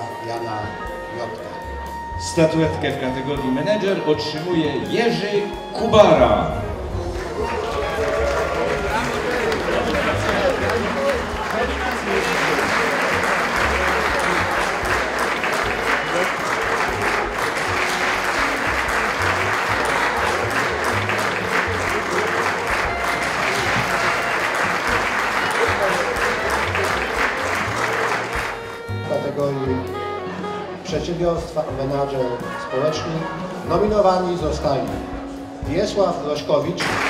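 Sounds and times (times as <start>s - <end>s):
background music with bass line: 0.0s - 37.0s
audience applauding: 6.5s - 29.8s, 36.8s - 37.0s.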